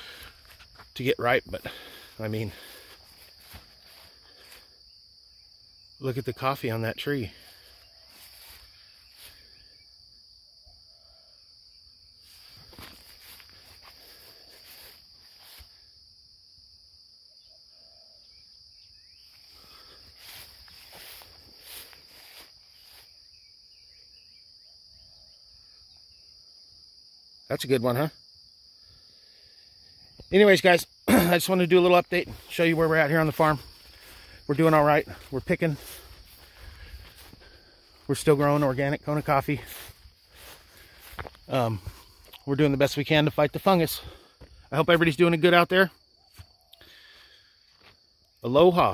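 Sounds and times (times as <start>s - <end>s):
insects trilling: 0.0s - 48.9s.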